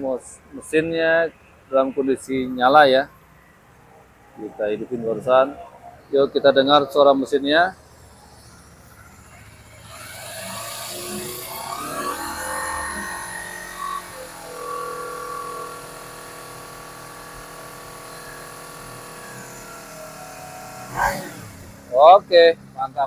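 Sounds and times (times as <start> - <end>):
motorcycle engine revving: 6.7 - 23.0.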